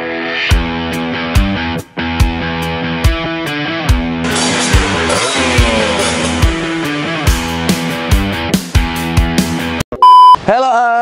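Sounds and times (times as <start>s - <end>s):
rock music with drums: 0.0s - 9.8s.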